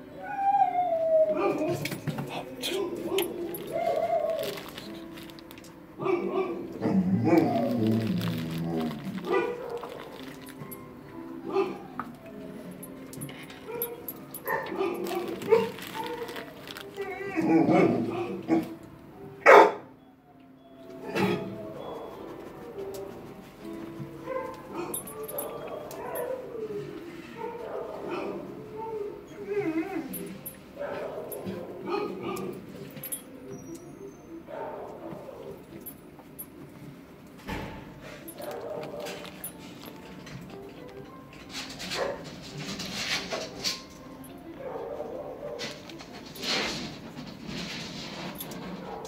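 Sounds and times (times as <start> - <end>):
dogs whining and yipping: 0.0 - 5.4, 6.0 - 10.8, 12.8 - 18.8, 19.5 - 23.4, 24.2 - 36.0, 38.1 - 46.8
dogs barking: 1.3 - 5.0, 6.0 - 10.7, 11.4 - 12.1, 13.5 - 18.8, 19.4 - 19.9, 24.1 - 28.8, 30.0 - 33.1, 34.4 - 35.7, 38.2 - 40.2, 41.7 - 46.4, 48.4 - 49.0.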